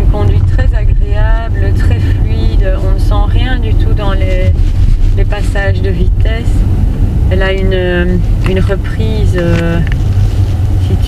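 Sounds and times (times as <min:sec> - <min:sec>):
people talking: 0:00.0 - 0:04.6, 0:05.2 - 0:06.6, 0:07.3 - 0:09.9
low rumble of road noise: 0:00.0 - 0:11.0.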